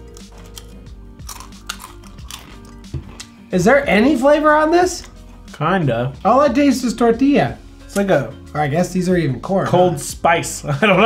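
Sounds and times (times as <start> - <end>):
tortilla chips crunching: 0.0 - 3.3
background music: 0.0 - 11.0.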